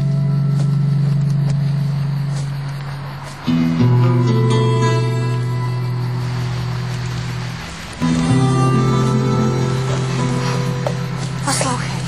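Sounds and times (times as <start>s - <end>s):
approaching car engine and tyres: 0.0s - 12.0s
sustained low music chord: 0.0s - 12.0s.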